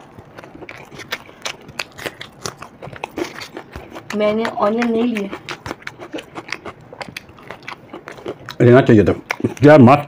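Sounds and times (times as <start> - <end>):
chewing crispy fritters: 0.0 - 10.0.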